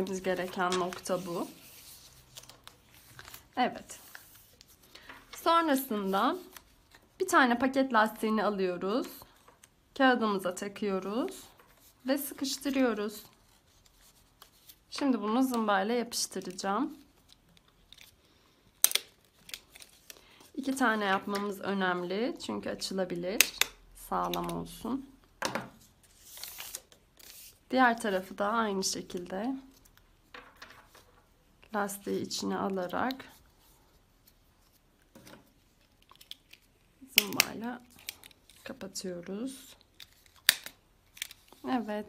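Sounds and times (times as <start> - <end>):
paper handling: 0.0 - 5.4, 19.2 - 20.4, 26.0 - 27.6.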